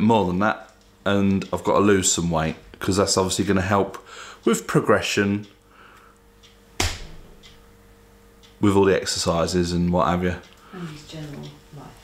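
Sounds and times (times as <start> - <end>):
faint steady hum: 0.0 - 12.0
sharp knock: 6.8 - 7.3.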